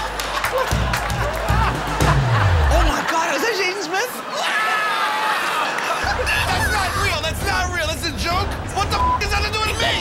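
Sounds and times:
men talking and shouting: 0.0 - 10.0.

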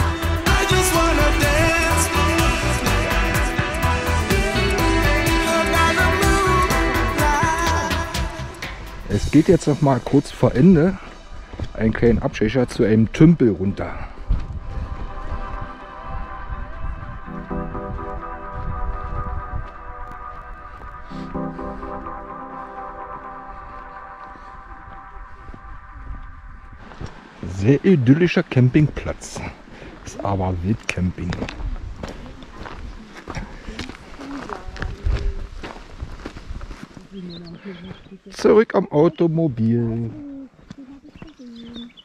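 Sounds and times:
person's voice: 0.0 - 11.0, 27.4 - 35.5, 37.2 - 41.9
faint background music: 4.3 - 29.3
footsteps on dirt track: 10.0 - 42.0.

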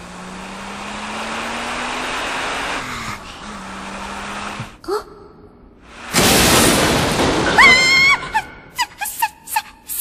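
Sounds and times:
loud car crash impact: 6.0 - 8.2
high-pitched scream: 7.5 - 9.3.

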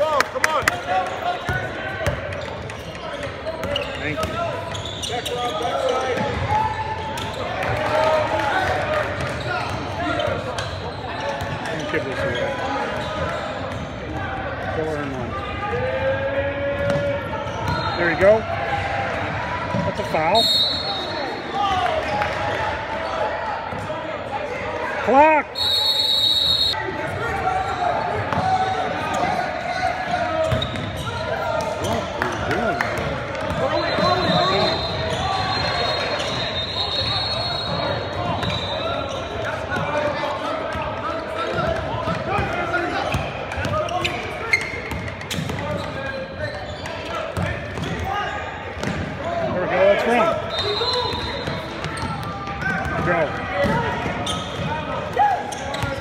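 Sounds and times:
voices of players and spectators: 0.0 - 56.0
basketball bouncing on court: 1.5 - 4.8, 16.8 - 17.8, 44.8 - 46.0, 47.4 - 48.1, 48.8 - 49.2, 51.1 - 56.0
referee's whistle blowing: 17.7 - 18.3, 20.3 - 21.6, 25.5 - 26.8, 33.6 - 39.3, 50.4 - 52.1.

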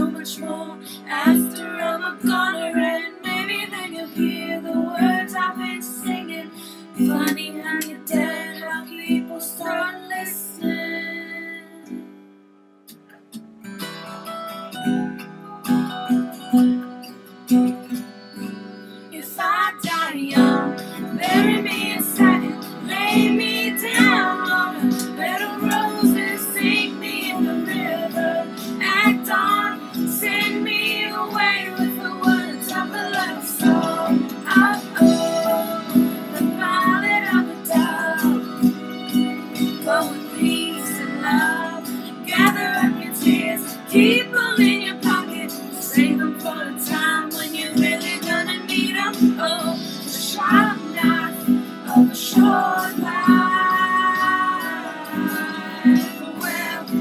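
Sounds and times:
girl singing: 0.0 - 12.0, 19.2 - 57.0
acoustic guitar strumming: 0.0 - 57.0.

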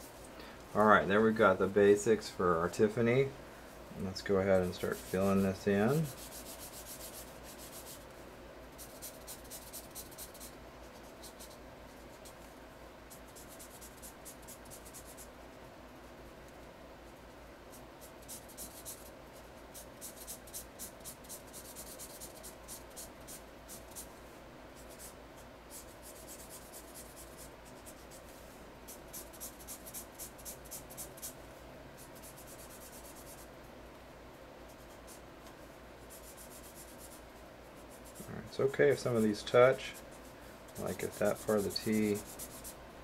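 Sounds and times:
marker scratching on paper: 4.5 - 8.1, 8.7 - 12.4, 13.1 - 15.3, 17.7 - 24.2, 24.8 - 28.3, 28.9 - 31.4, 32.0 - 33.5, 34.7 - 35.2, 36.0 - 37.2, 37.8 - 38.3, 39.0 - 42.8.

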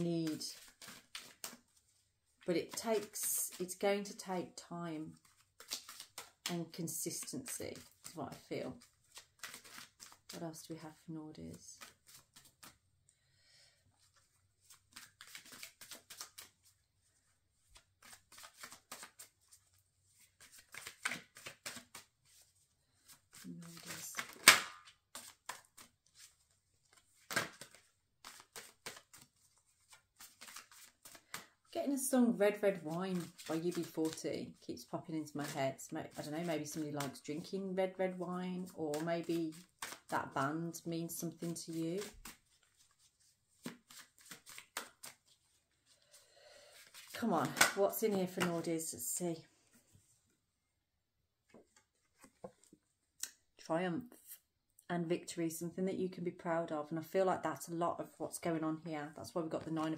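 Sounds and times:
cards being shuffled: 0.0 - 4.4, 5.0 - 10.7, 11.5 - 12.8, 14.0 - 48.7, 51.4 - 53.4
card slaps: 23.7 - 25.8, 27.2 - 29.2, 47.4 - 47.8
sharp slap of cards: 24.2 - 24.9.

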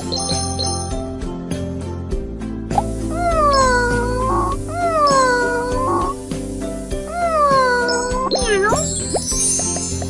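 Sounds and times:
background music: 0.0 - 10.0
cat meowing: 3.1 - 6.2, 7.1 - 8.8.

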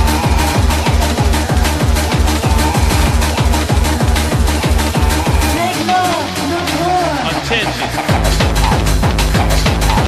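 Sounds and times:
fast distorted kick drum: 0.0 - 10.0
sustained bass tone: 0.0 - 10.0.

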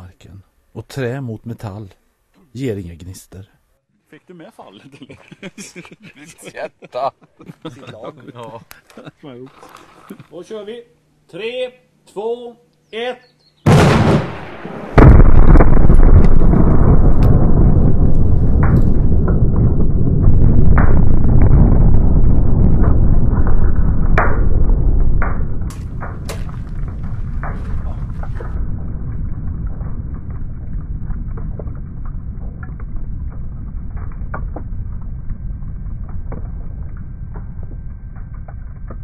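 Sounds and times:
soft hiss: 0.0 - 13.6
grenade explosion bang: 13.6 - 39.0
deep rumble: 13.7 - 39.0
scattered cracks and clicks: 15.5 - 39.0.

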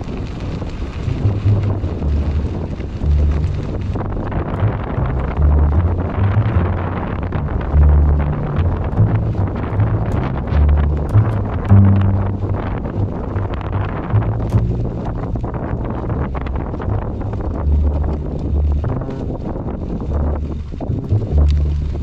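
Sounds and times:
wind on microphone: 0.0 - 22.0.

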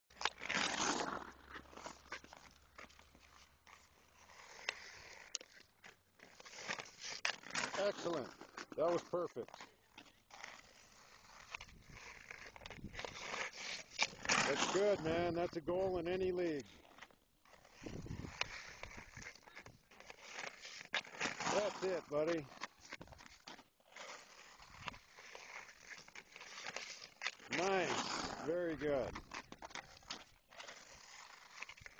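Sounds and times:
skates scraping on ice: 0.1 - 31.9.

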